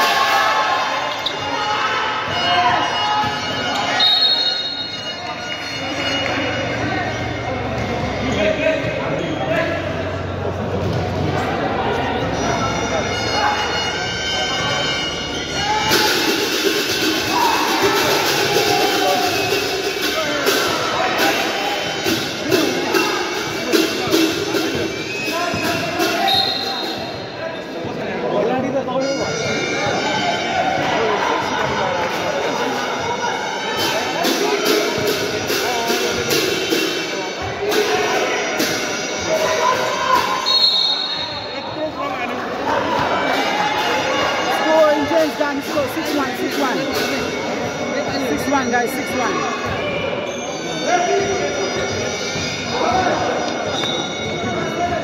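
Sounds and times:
music: 0.0 - 55.0
voices: 0.0 - 55.0.

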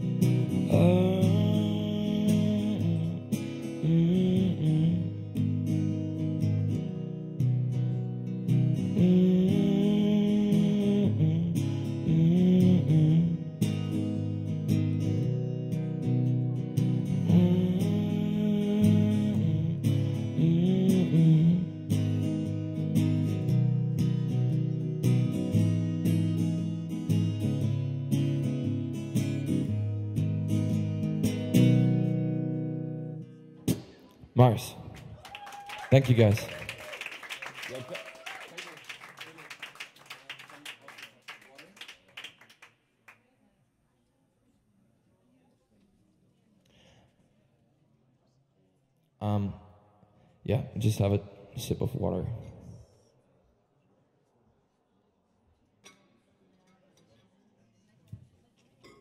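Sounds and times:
acoustic guitar strumming: 0.0 - 33.9
man singing wordless phrases: 0.5 - 5.3, 8.9 - 13.6, 17.2 - 21.9.

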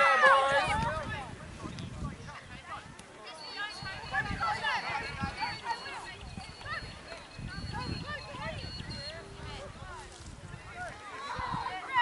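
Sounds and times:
distant shouting voices: 0.0 - 1.3, 3.2 - 9.8
wind rumbling on microphone: 0.0 - 12.0.

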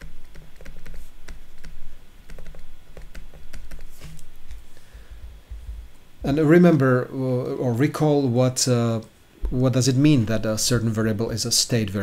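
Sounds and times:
stylus tapping on tablet: 0.0 - 4.6.

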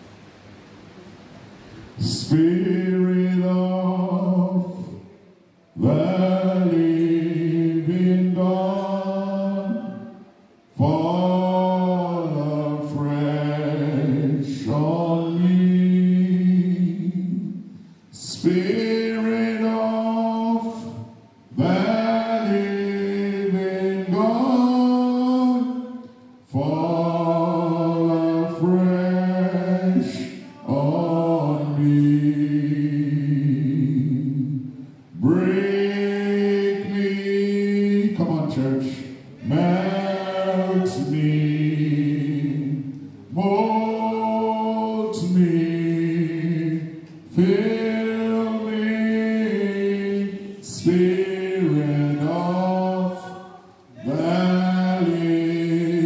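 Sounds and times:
man singing a hymn: 1.9 - 56.0.

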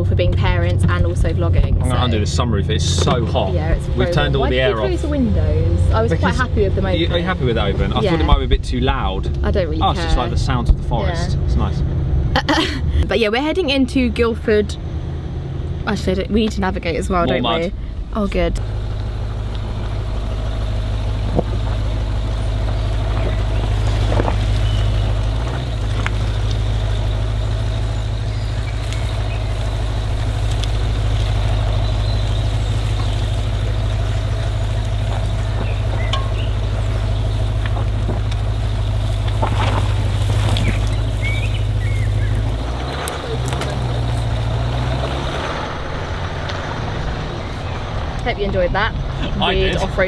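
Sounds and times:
car engine and tyre rumble: 0.0 - 50.0
tyres crackling on mud and twigs: 15.2 - 50.0.

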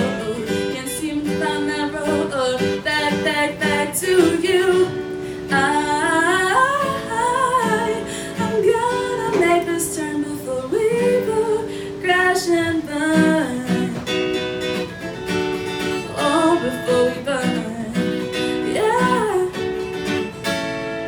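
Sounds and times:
woman singing: 0.0 - 14.5, 15.9 - 20.0
strummed acoustic guitar: 0.0 - 21.0.

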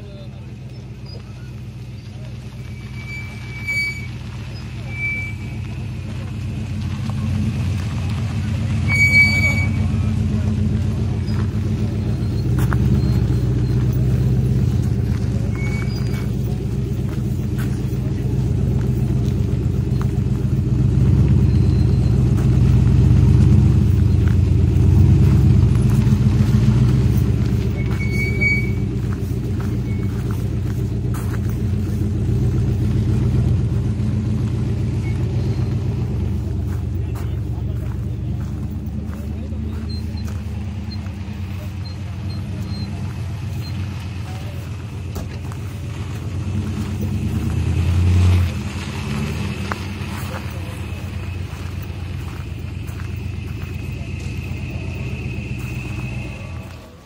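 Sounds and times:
car engine rumbling at low speed: 0.0 - 57.0.

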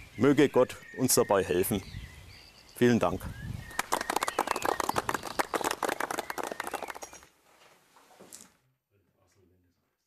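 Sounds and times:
small crowd applauding: 3.7 - 7.3.

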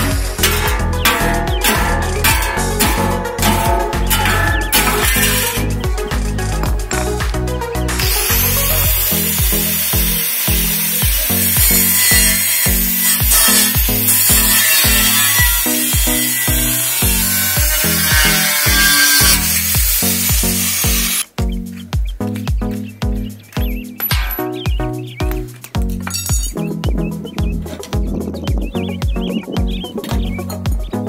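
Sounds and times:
angle grinder cutting metal: 0.0 - 21.3
background music with beat: 0.0 - 31.0.

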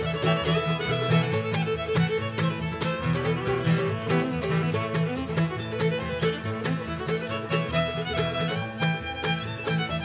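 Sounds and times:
acoustic guitar: 0.0 - 10.0
banjo: 0.0 - 10.0
fiddle: 0.0 - 10.0
mandolin: 0.0 - 10.0.

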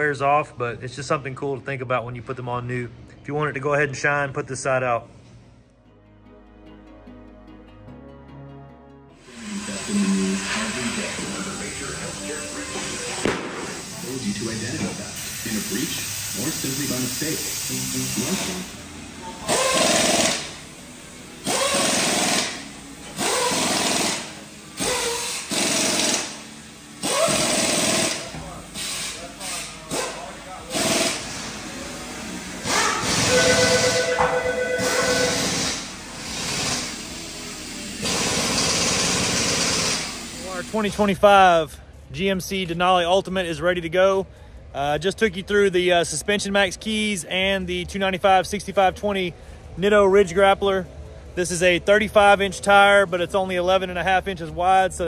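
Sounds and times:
background music: 5.5 - 14.8, 17.7 - 28.3, 30.7 - 41.2
impact wrench bursts: 19.4 - 20.8, 21.4 - 31.8, 32.6 - 40.9.

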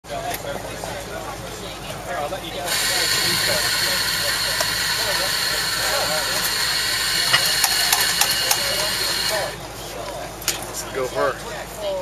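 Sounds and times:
steam wand hissing: 2.7 - 9.6.

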